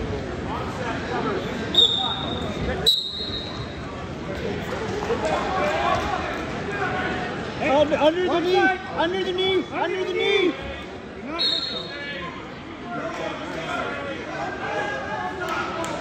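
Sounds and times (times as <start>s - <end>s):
crowd chatter: 0.0s - 16.0s
referee whistle blasts: 1.7s - 3.7s, 11.4s - 12.0s.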